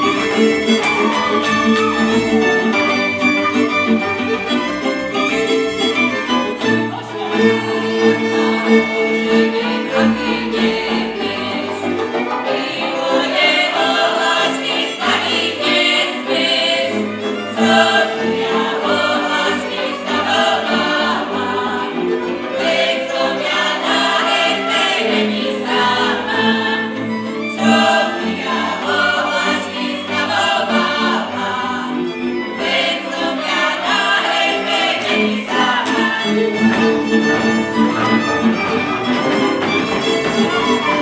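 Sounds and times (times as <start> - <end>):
fiddle band accompanying: 0.0 - 41.0
folk ensemble singing in chorus: 0.0 - 41.0.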